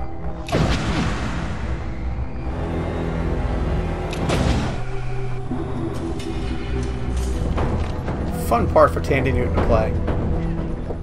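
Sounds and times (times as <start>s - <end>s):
ominous low drone film score: 0.0s - 11.0s.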